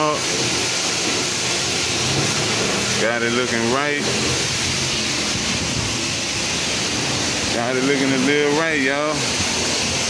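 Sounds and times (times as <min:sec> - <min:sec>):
car wash rushing noise: 0:00.0 - 0:10.0.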